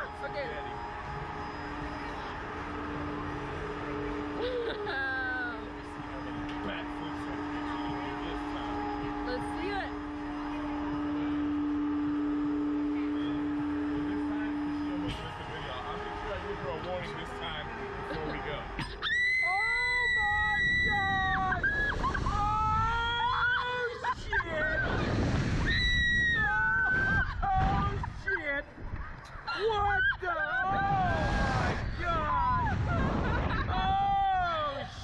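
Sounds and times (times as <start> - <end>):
outdoor noise: 0.0 - 35.0
steady low hum: 0.0 - 35.0.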